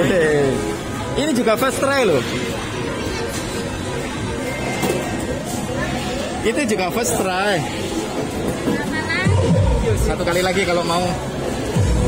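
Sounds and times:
arcade game machine music: 0.0 - 8.6.

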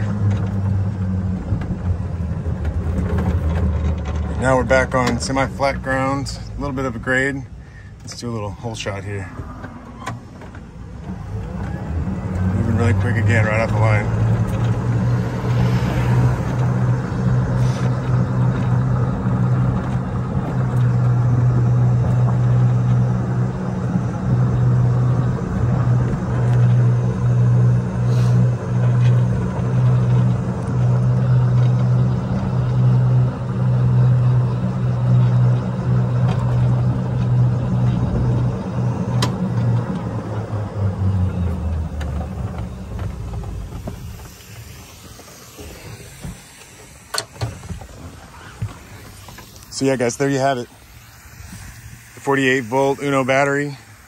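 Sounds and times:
electric golf cart motor hum: 0.0 - 6.9, 9.2 - 54.0
tyre and wind noise: 34.8 - 49.6.

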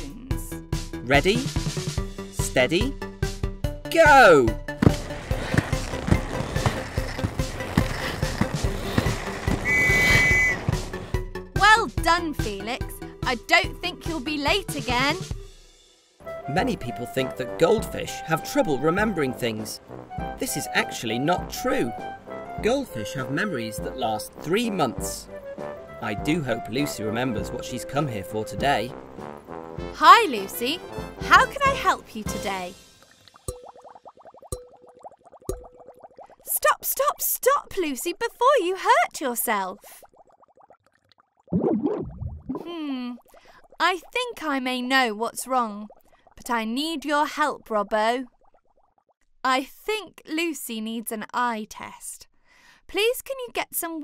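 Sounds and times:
cartoon music with steady beat: 0.0 - 5.1, 9.6 - 35.9
roller skates rolling on floor: 4.8 - 10.8
high whistle-like tone: 9.6 - 10.7
rapid bubbly blips: 31.5 - 38.2, 39.1 - 49.2.

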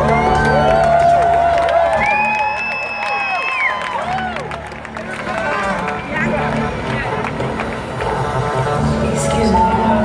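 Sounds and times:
loud concert music: 0.0 - 10.0
voices over music: 5.1 - 10.0.

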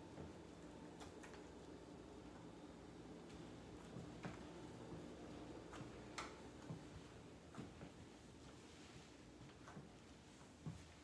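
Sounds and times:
footsteps on wooden floor: 3.3 - 11.0.

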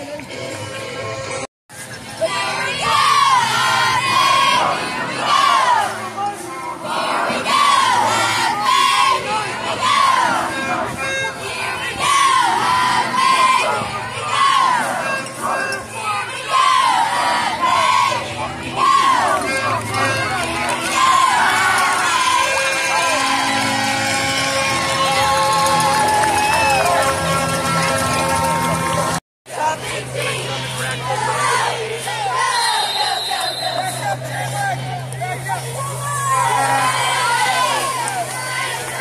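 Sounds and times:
cheerleaders chanting in unison: 2.2 - 24.9, 29.5 - 35.6, 36.2 - 39.0.

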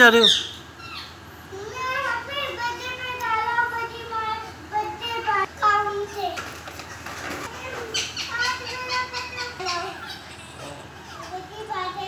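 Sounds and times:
young child's high-pitched voice: 1.5 - 6.5, 7.5 - 10.2, 11.1 - 12.0.

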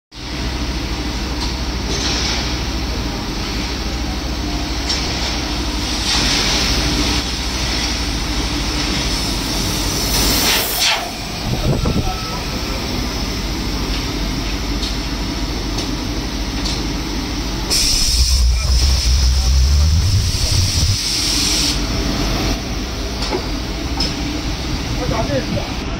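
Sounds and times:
machine humming: 7.2 - 23.0
air hissing: 8.5 - 13.3, 17.6 - 22.6
low rumble: 17.9 - 21.4.

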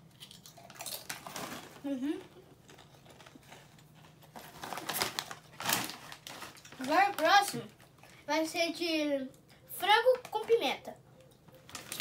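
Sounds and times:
foil snack bag crinkling: 0.2 - 2.0, 2.6 - 8.3, 11.6 - 12.0.

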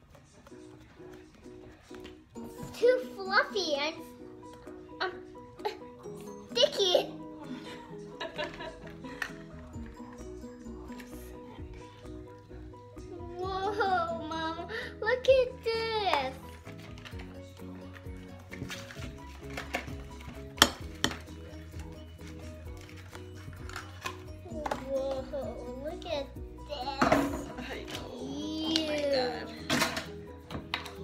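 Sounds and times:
background music: 0.0 - 31.0.

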